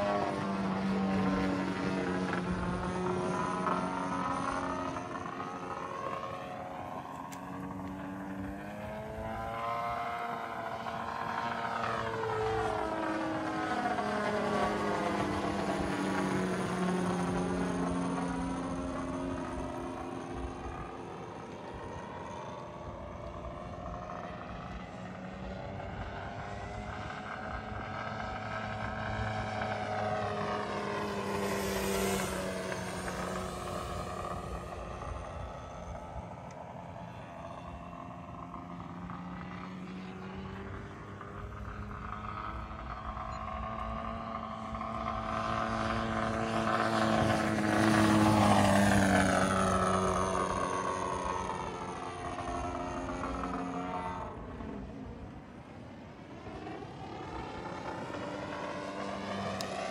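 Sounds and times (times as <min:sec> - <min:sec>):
model airplane motor droning: 0:00.0 - 0:59.9.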